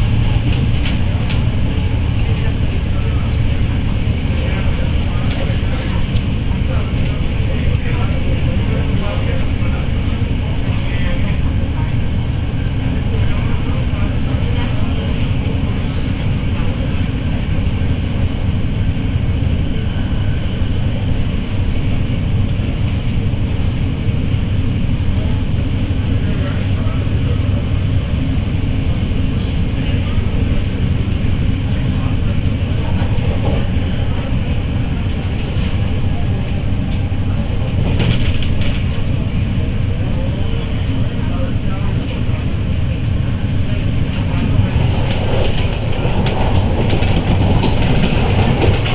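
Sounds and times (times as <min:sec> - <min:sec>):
train wheels rumbling on track: 0:00.0 - 0:48.9.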